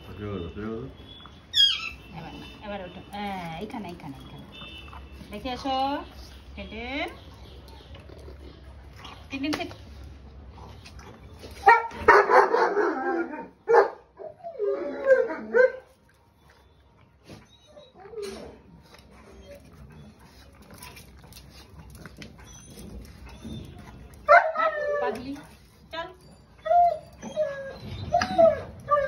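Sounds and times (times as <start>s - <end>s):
pug barking and yelping: 19.2s - 25.6s, 26.2s - 29.0s.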